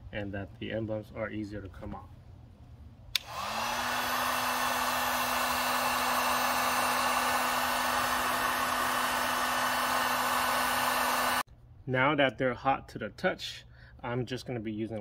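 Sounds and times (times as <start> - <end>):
heat gun switch click: 3.1 - 3.6
heat gun motor whine: 3.2 - 11.4.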